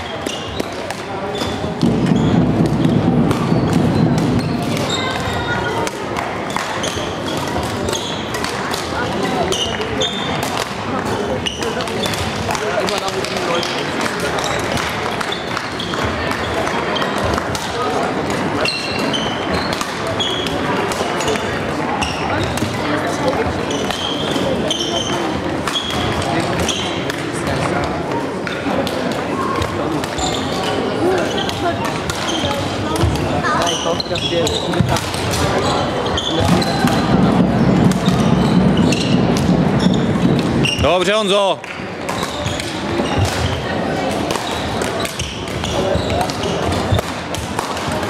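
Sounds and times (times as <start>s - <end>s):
shoe squeaks on wooden floor: 0.0s - 5.8s, 6.5s - 8.5s, 9.2s - 10.4s, 11.4s - 12.2s, 18.6s - 22.6s, 23.6s - 27.0s, 30.1s - 41.5s, 42.1s - 43.8s, 44.4s - 47.0s
background voices in hall: 0.0s - 48.0s
racket hitting shuttlecock: 0.2s - 21.6s, 28.4s - 33.8s, 34.5s - 40.8s, 41.6s - 48.0s.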